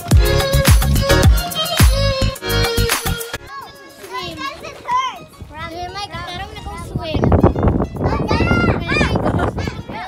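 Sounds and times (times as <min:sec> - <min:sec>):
children shouting in water: 0:08.1 - 0:10.0.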